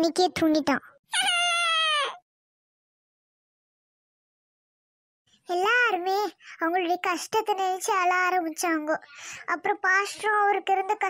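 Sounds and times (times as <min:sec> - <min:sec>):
drawn-out wailing cry: 0:01.2 - 0:02.2.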